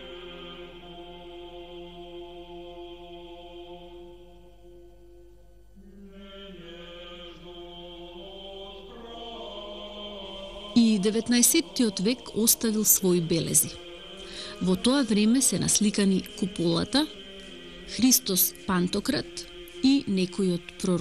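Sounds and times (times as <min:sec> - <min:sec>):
slow choral chant: 0:00.0 - 0:21.0.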